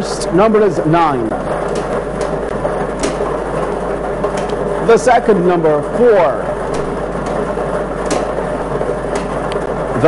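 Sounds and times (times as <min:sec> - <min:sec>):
lottery balls tumbling: 0:00.0 - 0:10.0.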